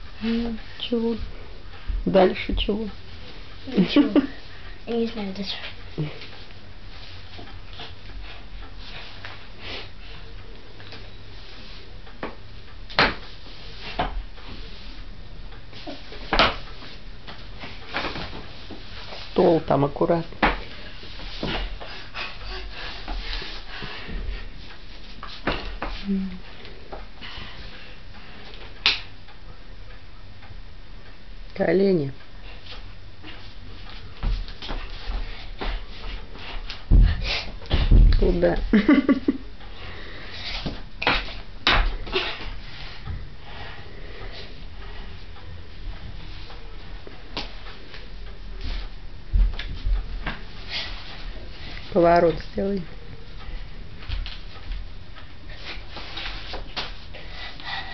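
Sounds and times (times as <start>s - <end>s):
footsteps knocking on floor: 36.8s - 38.7s.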